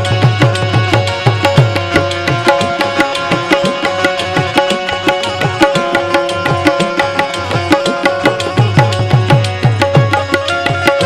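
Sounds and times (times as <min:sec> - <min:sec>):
plucked keyed banjo melody: 0:00.0 - 0:11.0
tabla rhythm: 0:00.0 - 0:11.0.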